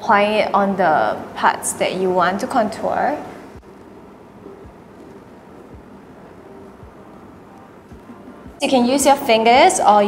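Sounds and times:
background hiss: 3.3s - 8.8s
soft low thumps: 3.6s - 8.6s.

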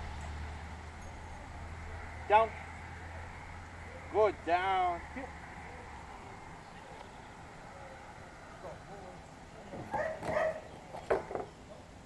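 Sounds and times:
dog barking: 9.9s - 10.7s.

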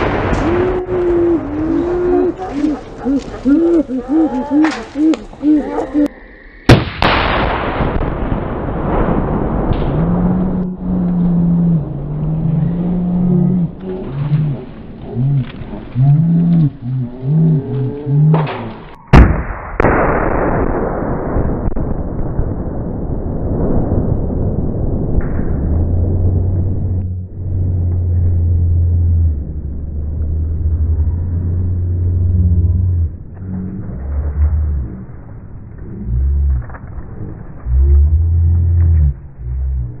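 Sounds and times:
explosive blast: 0.0s - 2.3s, 6.6s - 12.5s, 18.9s - 28.8s
low rumbling sounds: 0.0s - 40.0s.

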